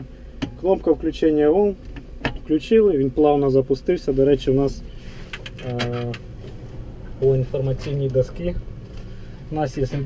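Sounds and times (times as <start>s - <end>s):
tractor diesel engine running: 0.0s - 10.0s.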